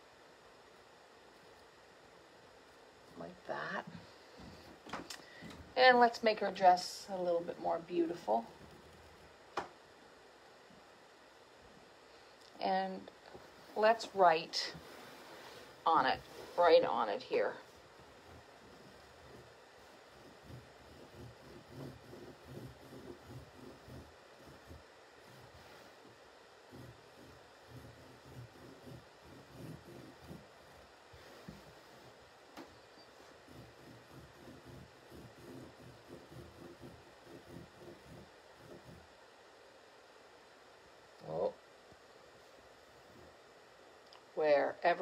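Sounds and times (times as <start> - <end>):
room hiss: 0.0 - 45.0
marker scratching on coarse fabric: 13.8 - 32.3, 33.0 - 39.2.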